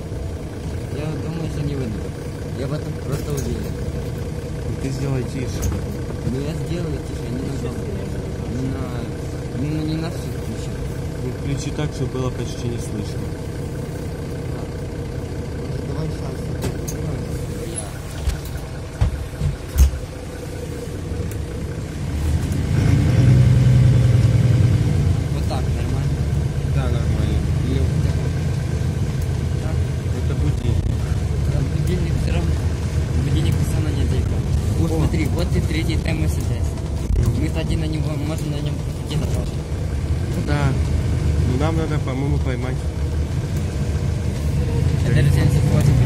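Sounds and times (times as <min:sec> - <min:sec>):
bus engine hum: 0:00.0 - 0:46.0.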